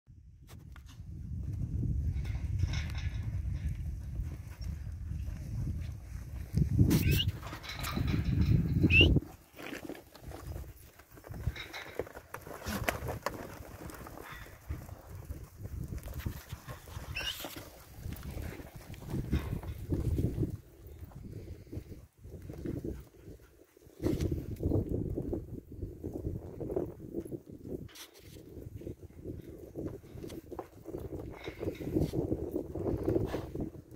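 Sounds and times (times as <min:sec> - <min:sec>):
low rumble of cattle moving: 0:00.2 - 0:33.9
high sliding animal calls: 0:07.0 - 0:07.4, 0:17.1 - 0:17.5.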